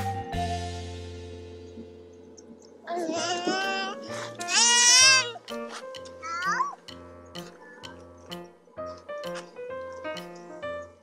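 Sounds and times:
background music with bass line: 0:00.0 - 0:02.6
child squealing: 0:03.0 - 0:05.4, 0:06.2 - 0:06.8.

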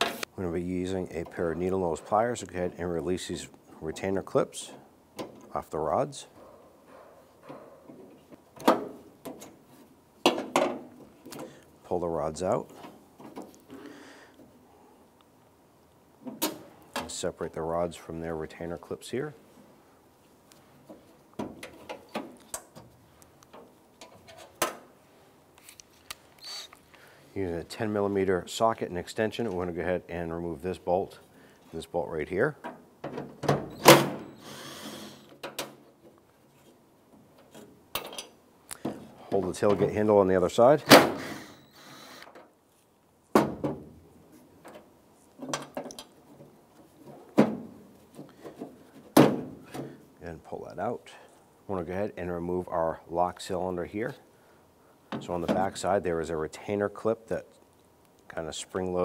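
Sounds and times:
sharp knocks and clunks: 0:10.2 - 0:11.5, 0:43.3 - 0:44.0, 0:44.6 - 0:50.0.

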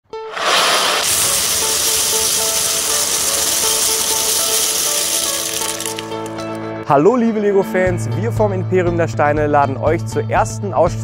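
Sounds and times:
background music with simple melody: 0:00.0 - 0:11.0
plastic bricks pouring and clattering: 0:00.3 - 0:06.4.

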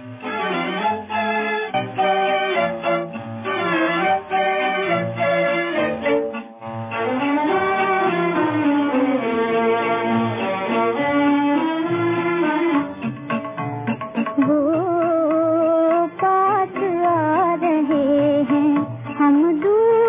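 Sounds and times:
violin section melody: 0:00.0 - 0:13.4
tabla accompaniment: 0:00.0 - 0:20.0.

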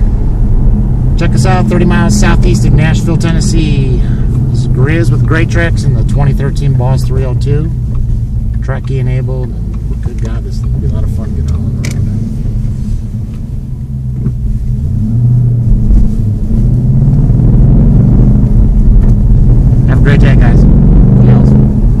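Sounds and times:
car engine heard from inside cabin: 0:00.0 - 0:22.0.

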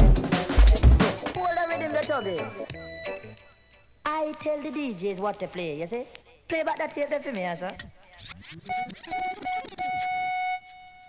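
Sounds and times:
electronic beeps: 0:01.2 - 0:04.0, 0:08.2 - 0:11.0.

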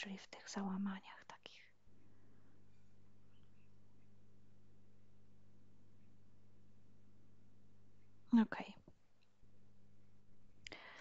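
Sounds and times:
woman speaking: 0:00.0 - 0:01.7, 0:08.3 - 0:08.9
faint low hum: 0:00.0 - 0:11.0.

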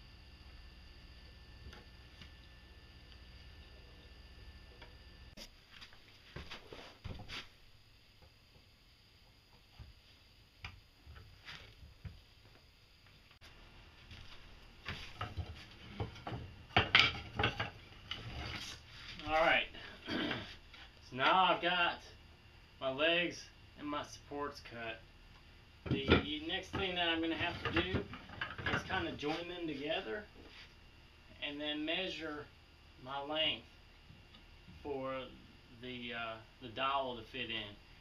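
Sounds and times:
faint steady hum: 0:00.0 - 0:38.0.

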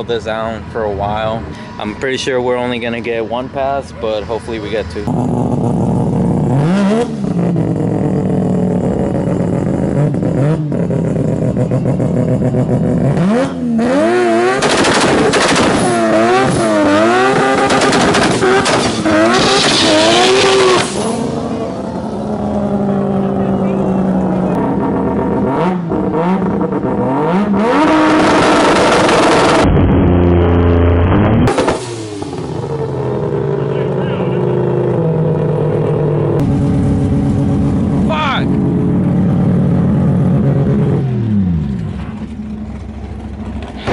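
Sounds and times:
rotary engine revving: 0:04.0 - 0:43.9.

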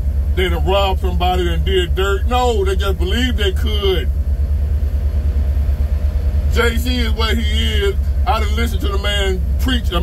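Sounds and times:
vehicle rumble inside cabin: 0:00.0 - 0:10.0.

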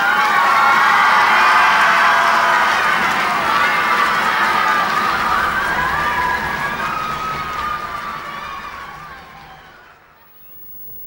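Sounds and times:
crowd cheering and shouting: 0:00.0 - 0:10.5.

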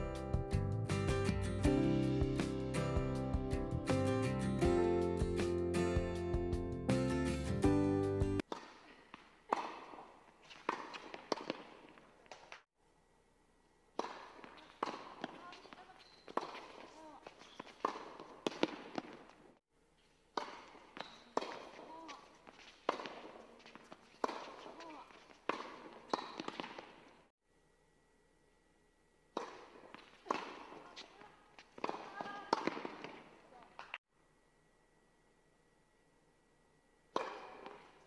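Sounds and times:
tennis balls bouncing on hard court: 0:08.4 - 0:12.6, 0:13.9 - 0:27.3, 0:29.3 - 0:34.0, 0:37.1 - 0:38.0
tennis balls struck by racquets: 0:08.4 - 0:12.6, 0:13.9 - 0:19.5, 0:20.1 - 0:27.3, 0:29.3 - 0:34.0, 0:37.1 - 0:38.0.

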